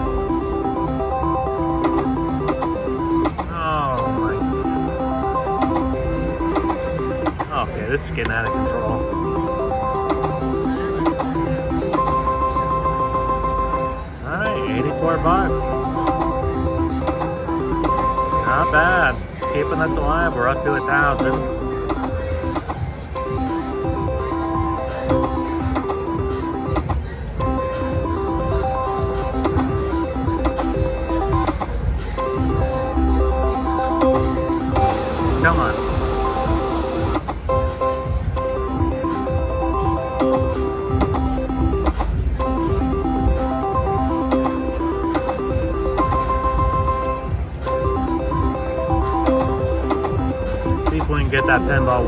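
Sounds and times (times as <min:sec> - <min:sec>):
casino hubbub of voices: 0:00.0 - 0:52.0
slot machine chiming tones: 0:00.0 - 0:52.0.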